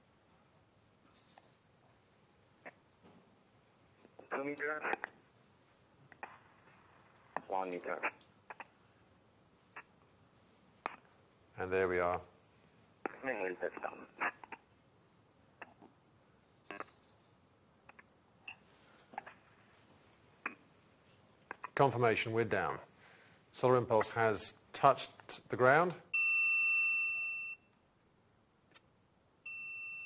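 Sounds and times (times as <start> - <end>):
person speaking: 4.0 - 5.2, 6.2 - 8.8, 10.9 - 12.4, 13.0 - 14.7, 21.6 - 22.9, 23.5 - 26.0.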